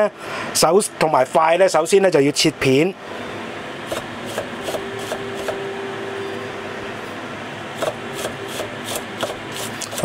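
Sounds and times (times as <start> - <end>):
steady hum: 0.0 - 10.0
cleaver slicing garlic on wooden board: 7.8 - 10.0.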